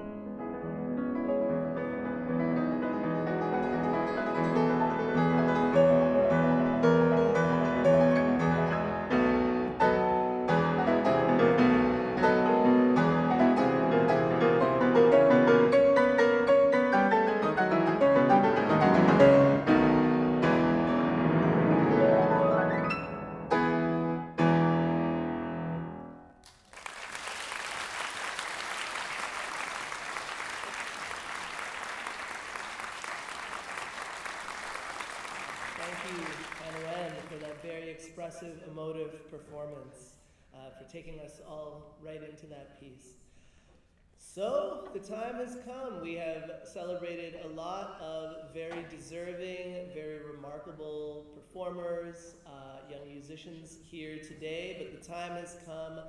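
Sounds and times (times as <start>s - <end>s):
solo grand piano playing: 0.0s - 26.4s
audience applause: 26.4s - 37.6s.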